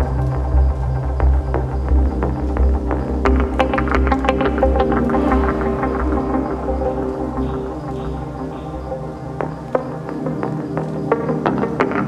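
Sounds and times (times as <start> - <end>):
sustained synth drone: 0.0 - 12.0
plucked notes: 3.6 - 11.1.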